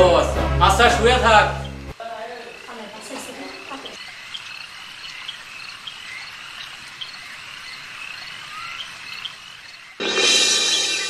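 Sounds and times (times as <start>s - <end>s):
frog chirps: 1.5s - 10.0s
insect hiss: 1.5s - 11.0s.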